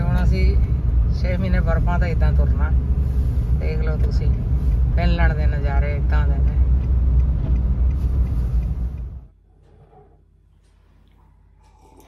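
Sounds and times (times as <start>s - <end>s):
car engine and tyre rumble: 0.0s - 9.5s.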